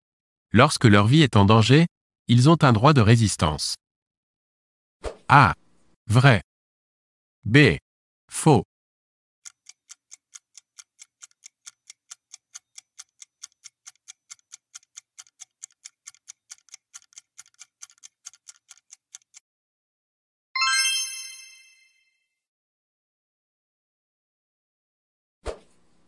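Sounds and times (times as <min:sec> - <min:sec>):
rapid timer ticks: 0:09.4 - 0:19.4
bright multi-tone chime: 0:20.6 - 0:22.2.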